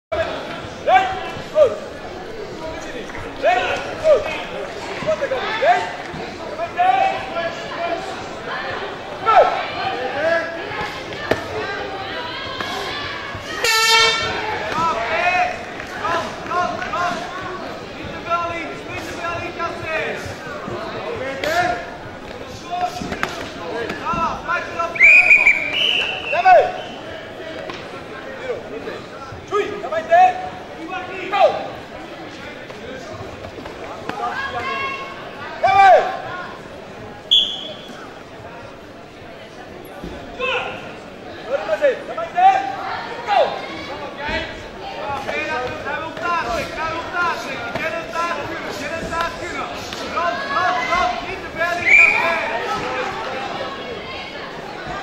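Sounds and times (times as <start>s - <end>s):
person shouting calls in echoing hall: 11.6s - 17.2s, 34.2s - 36.6s.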